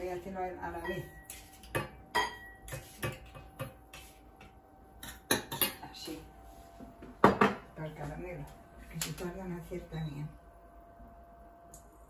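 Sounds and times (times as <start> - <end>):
glass jar clinking on saucepan: 0.8 - 2.8.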